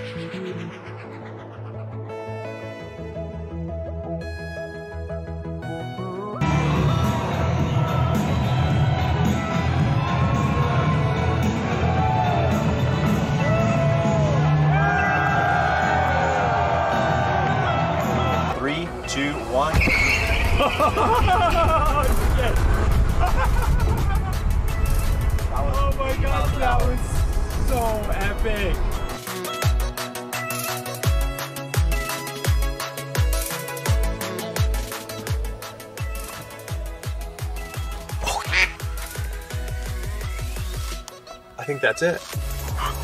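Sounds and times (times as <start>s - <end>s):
background music: 0.0s - 43.0s
people shouting and cheering: 6.4s - 18.6s
low rumble: 20.4s - 29.2s.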